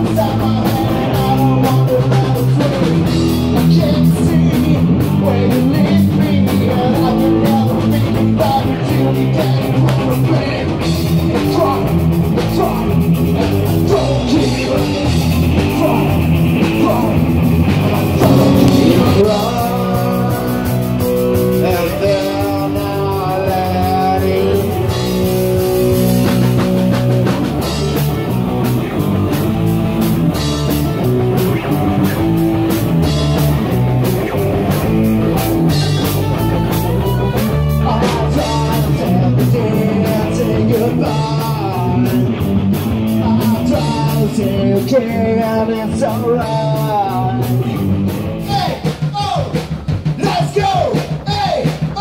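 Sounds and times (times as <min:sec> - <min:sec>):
bass guitar: 0:00.0 - 0:21.5, 0:23.0 - 0:48.6
drum kit: 0:18.2 - 0:20.5
electric guitar: 0:18.2 - 0:21.1.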